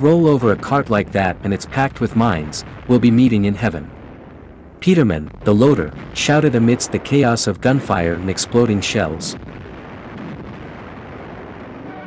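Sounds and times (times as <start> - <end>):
narration voice: 0.0 - 3.9, 4.8 - 9.4
distant gunfire and explosions: 0.0 - 12.0.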